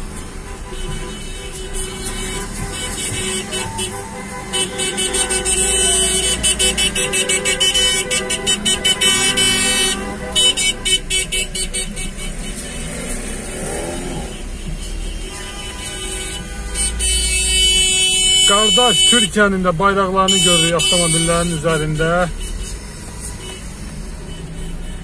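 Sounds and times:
car horns honking: 0.0 - 25.0.

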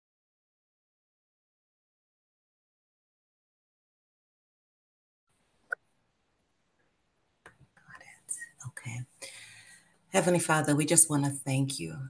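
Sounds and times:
woman whispering: 7.8 - 9.2
woman speaking quietly: 8.0 - 9.2.

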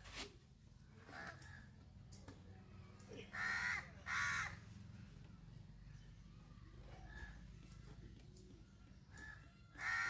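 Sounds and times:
crow cawing: 3.2 - 4.6, 9.2 - 10.0.

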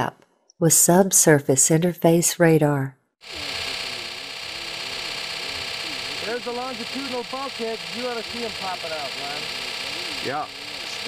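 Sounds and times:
chart recorder whirring: 3.2 - 11.0.

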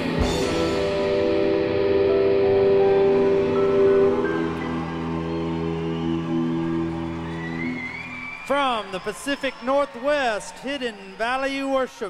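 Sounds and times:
sustained electric guitar: 0.0 - 7.7
band chord ringing out: 0.2 - 7.0.

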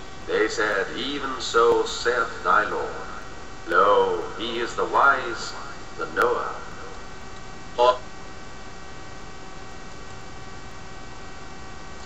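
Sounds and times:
electrical mains hum and hiss: 0.0 - 12.0
faint steady tones: 0.0 - 12.0.

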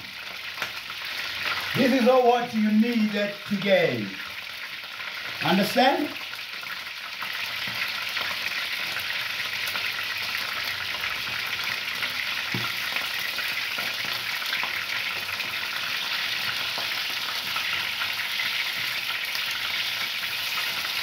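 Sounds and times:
food sizzling in hot fat: 0.0 - 21.0.

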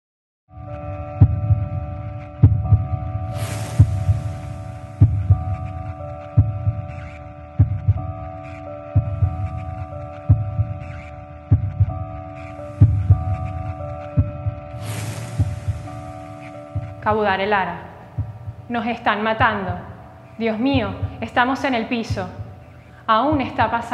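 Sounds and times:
held synthetic chord: 0.5 - 18.8
bright hissing swells: 3.3 - 5.0, 14.7 - 16.7.

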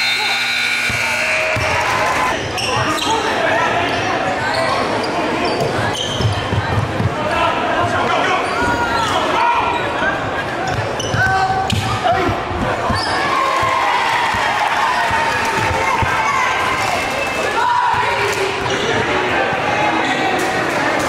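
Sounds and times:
sneaker squeaks: 0.0 - 3.3, 3.9 - 6.8, 10.6 - 11.4, 12.9 - 13.2
spectators talking: 0.0 - 21.0.

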